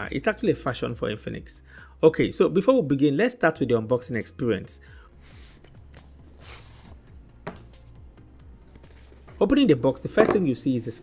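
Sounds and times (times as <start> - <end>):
quiet background music: 0.0 - 11.0
cardboard sleeve scraping: 5.2 - 7.0.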